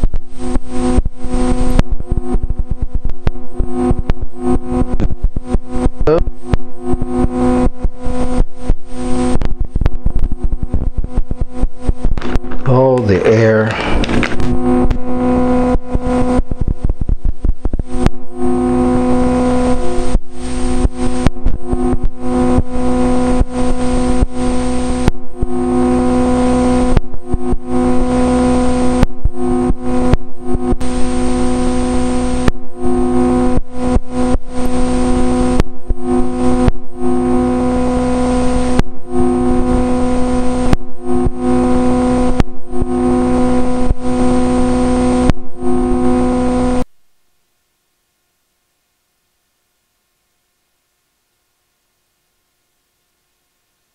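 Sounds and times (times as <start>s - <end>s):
electrical buzz with high whine: 0.0s - 53.9s.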